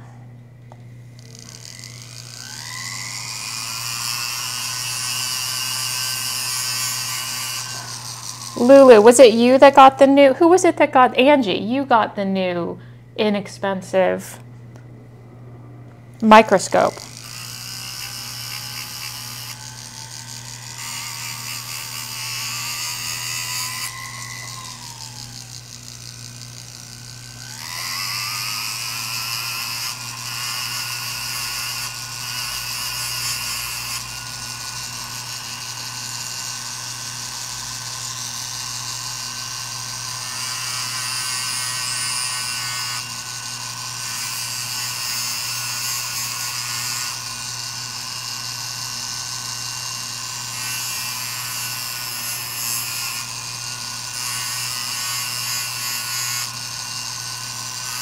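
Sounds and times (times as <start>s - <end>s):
rotary grinding tool whining: 0.0s - 10.6s, 16.3s - 58.0s.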